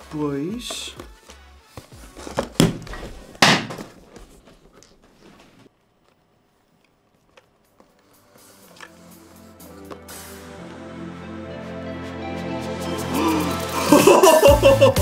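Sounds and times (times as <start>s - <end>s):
background music: 0.0s - 3.1s, 7.6s - 15.0s.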